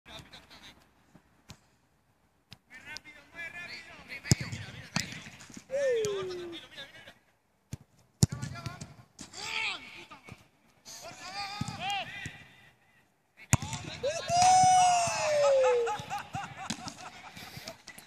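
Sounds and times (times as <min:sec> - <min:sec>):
people shouting: 0:05.7 - 0:06.6, 0:14.0 - 0:16.2.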